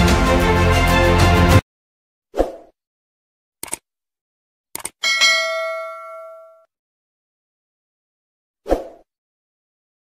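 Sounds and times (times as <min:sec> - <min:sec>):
quick clicks: 0:03.6 - 0:03.8, 0:04.7 - 0:05.0
bright bell ding: 0:05.0 - 0:06.7.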